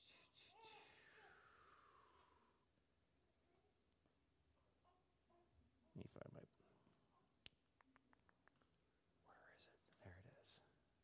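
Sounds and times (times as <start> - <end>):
whispered mutter: 6.0 - 10.8.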